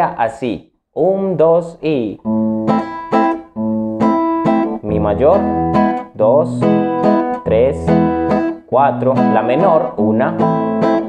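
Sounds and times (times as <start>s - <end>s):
classical guitar strummed: 2.2s - 11.0s.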